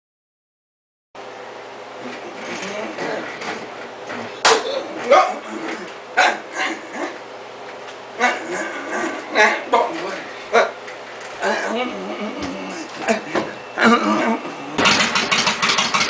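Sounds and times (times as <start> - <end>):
steady low hum: 1.2 - 16.0
man yelping: 8.2 - 10.8.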